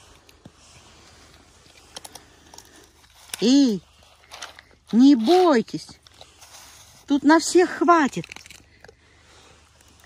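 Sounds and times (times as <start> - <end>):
raccoons crunching nuts: 0.0 - 10.0.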